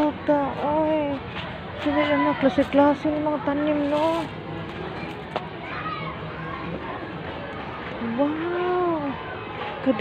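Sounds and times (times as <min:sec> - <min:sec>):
child's high voice: 0:05.6 - 0:06.7.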